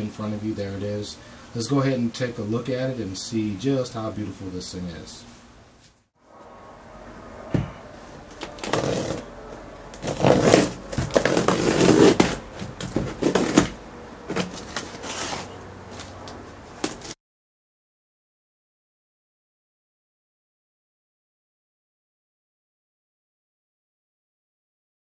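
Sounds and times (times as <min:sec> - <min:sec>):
cardboard scraping and rustling: 0:08.3 - 0:09.4, 0:10.0 - 0:17.2
packing tape peeled: 0:08.6 - 0:09.3, 0:09.9 - 0:15.5.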